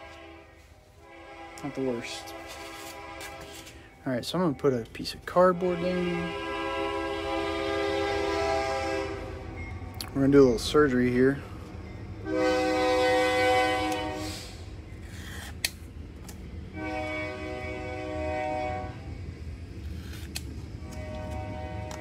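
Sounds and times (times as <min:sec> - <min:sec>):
train horn blasts: 0:00.0 - 0:04.0, 0:05.3 - 0:09.6, 0:12.2 - 0:14.7, 0:16.7 - 0:19.2, 0:20.8 - 0:22.0.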